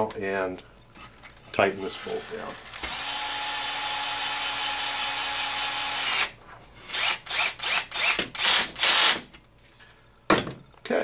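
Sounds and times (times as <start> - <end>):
power drill driving a bolt: 2.7 - 6.3, 6.9 - 9.2.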